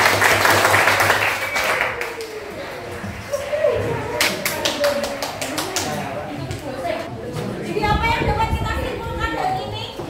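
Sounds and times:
hands clapping quickly: 0.0s - 2.4s, 4.1s - 6.6s
students' voices: 1.9s - 10.0s.

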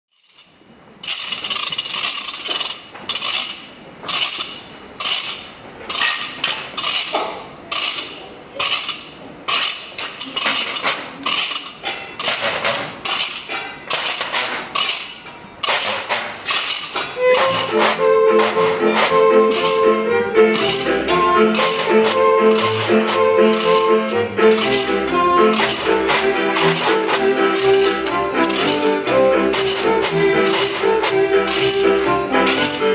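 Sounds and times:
rhythmic rasping washboard scrapes: 1.0s - 32.9s.

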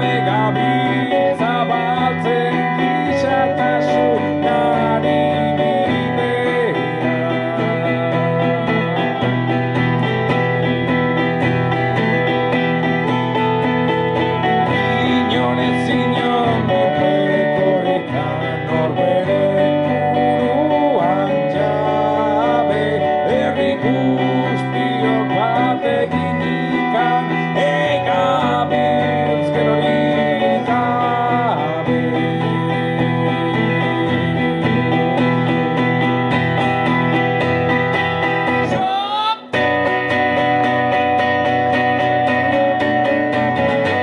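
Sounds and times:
acoustic guitar strumming: 0.0s - 44.0s
man singing: 0.0s - 44.0s.

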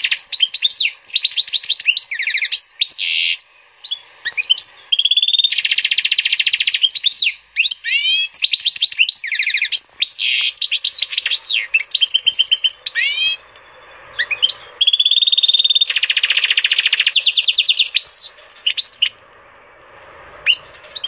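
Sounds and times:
songbird singing trills and whistles: 0.0s - 19.3s, 20.4s - 21.0s.

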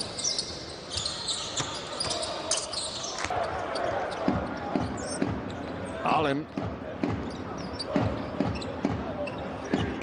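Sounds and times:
arena crowd hum: 1.3s - 10.0s.

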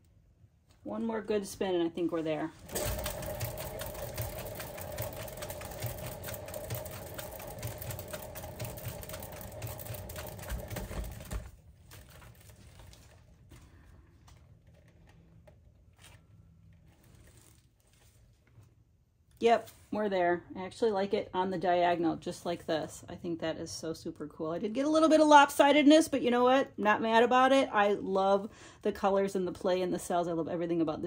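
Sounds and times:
spinning turntable bearing rattle: 2.7s - 11.3s.

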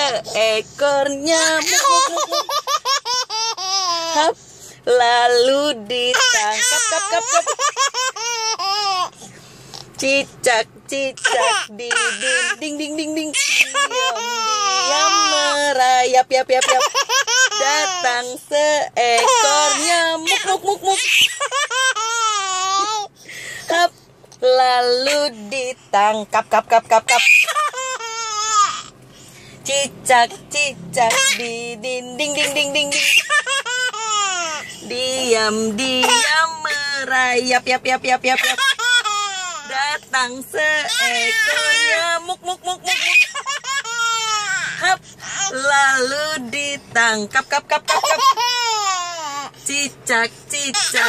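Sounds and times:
baby laughing: 1.6s - 4.2s, 6.2s - 9.1s, 13.4s - 15.6s, 16.6s - 18.0s, 19.2s - 23.1s, 27.1s - 28.9s, 32.9s - 34.6s, 38.4s - 39.7s, 42.6s - 44.8s, 47.9s - 49.4s
baby squealing with laughter: 20.9s - 23.1s, 27.1s - 28.9s, 32.9s - 34.6s, 42.8s - 44.8s.

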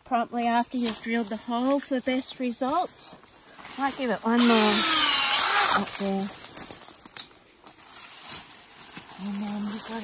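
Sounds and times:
faint clicks and rustles: 5.8s - 10.0s.

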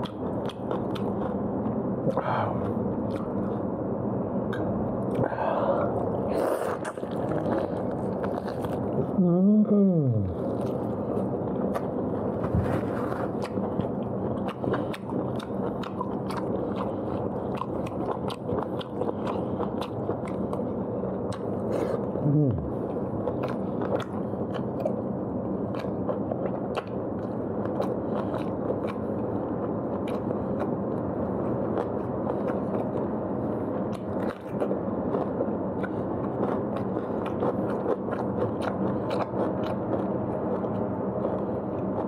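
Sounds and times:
person chewing meat: 0.0s - 9.4s, 10.0s - 42.0s
steady background hum: 0.0s - 42.0s
wet mouth clicks and smacks: 4.5s - 5.3s
falling mmm voice sound: 9.1s - 10.4s, 22.2s - 22.7s.

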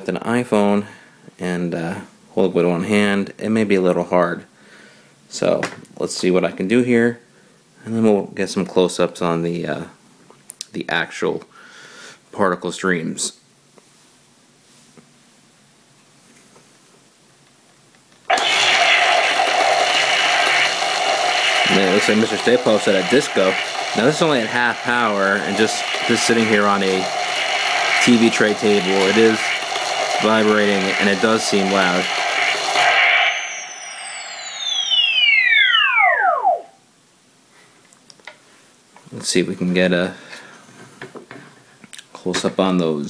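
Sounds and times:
toy electronic blast sound effect: 18.3s - 36.8s
falling whistling tone: 31.4s - 36.8s.

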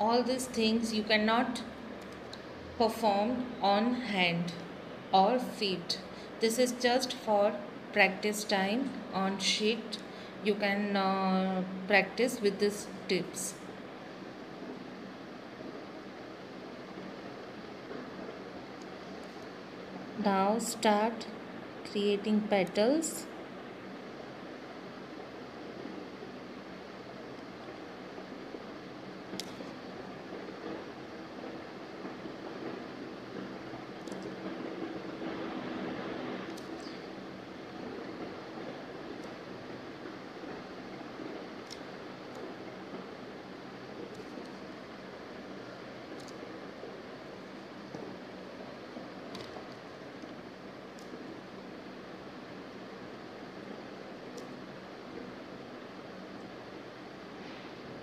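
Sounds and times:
background hiss: 0.0s - 58.0s.

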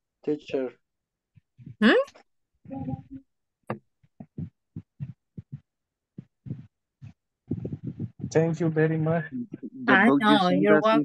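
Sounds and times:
clipped video call audio: 0.2s - 0.8s, 1.4s - 5.6s, 6.2s - 11.0s.

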